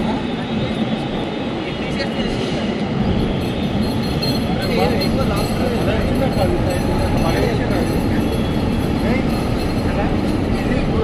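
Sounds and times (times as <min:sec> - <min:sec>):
indistinct background voices: 0:04.0 - 0:11.0.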